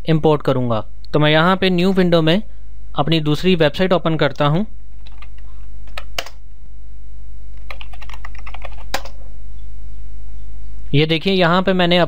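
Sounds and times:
steady low hum: 0:00.0 - 0:12.0
typing on computer keyboard: 0:05.0 - 0:06.4, 0:07.6 - 0:09.2.

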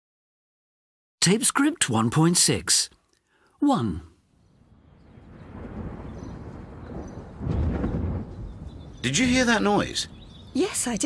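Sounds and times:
thunder rumbling: 0:04.4 - 0:11.0.

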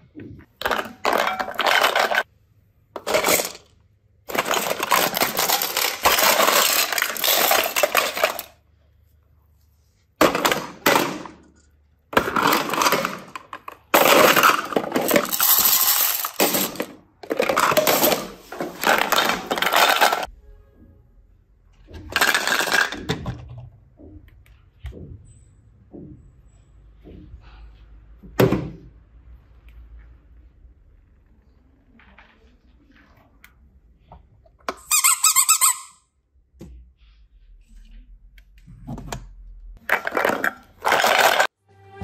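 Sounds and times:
plastic cases clattering: 0:00.5 - 0:02.3, 0:03.0 - 0:03.7, 0:04.3 - 0:08.6, 0:10.2 - 0:20.3, 0:21.9 - 0:23.6, 0:39.8 - 0:41.5.

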